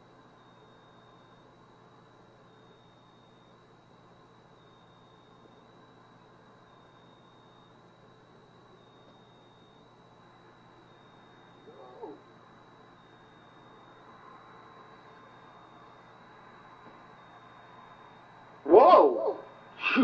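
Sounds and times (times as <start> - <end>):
faint wavering high-pitched tone: 0.0 - 20.0.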